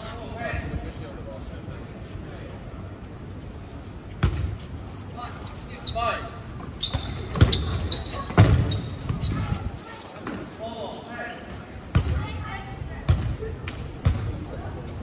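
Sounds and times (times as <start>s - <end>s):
dodgeballs thudding: 6.9s - 9.6s, 11.9s - 12.4s, 13.0s - 14.4s.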